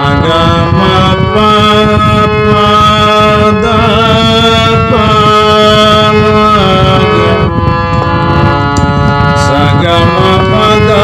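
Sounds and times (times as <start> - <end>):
harmonium reed chords: 0.0 - 11.0
loud rough rushing noise: 0.0 - 11.0.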